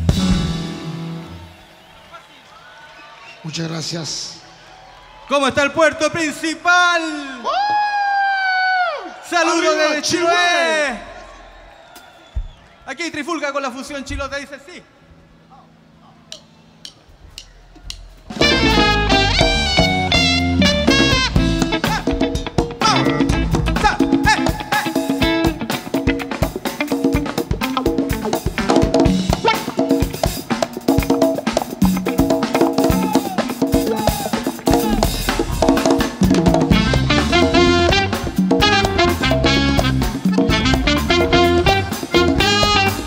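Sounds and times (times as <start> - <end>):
bass line: 0.0 - 1.1, 17.2 - 25.7, 34.7 - 43.0
drum kit: 0.0 - 1.6, 16.3 - 43.0
live band playing: 0.0 - 1.9, 16.2 - 43.0
electric guitar phrases: 18.3 - 29.8, 36.6 - 43.0.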